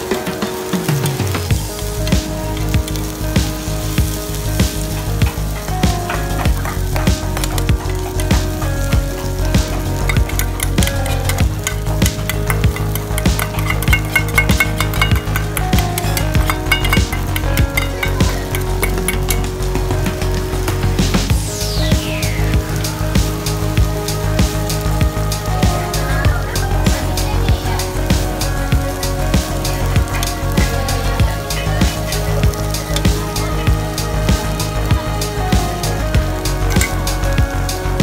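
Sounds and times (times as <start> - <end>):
batter sizzling on griddle: 0.0 - 38.0
metal spatula clicking and scraping: 10.0 - 19.5.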